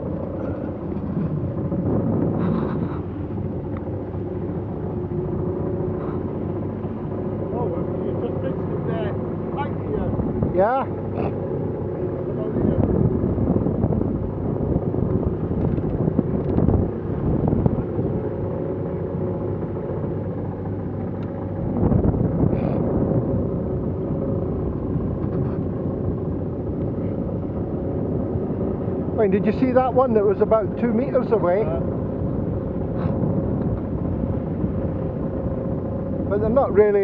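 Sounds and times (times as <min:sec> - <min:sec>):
steady low drone: 0:00.0 - 0:37.0
water rushing along hull: 0:00.0 - 0:37.0
wind buffeting microphone: 0:00.0 - 0:37.0.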